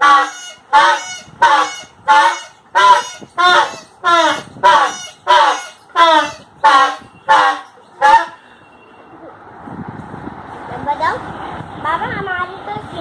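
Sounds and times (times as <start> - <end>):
toy party horn honks: 0.0 - 8.4.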